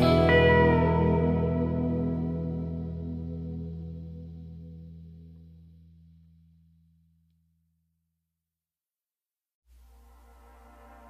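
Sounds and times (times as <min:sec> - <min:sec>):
guitar chord with echo: 0:00.0 - 0:05.8.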